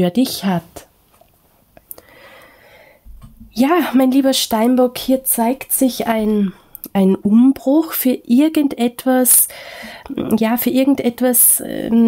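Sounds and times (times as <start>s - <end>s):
person inhaling softly: 1.9s - 3.1s, 9.5s - 10.1s.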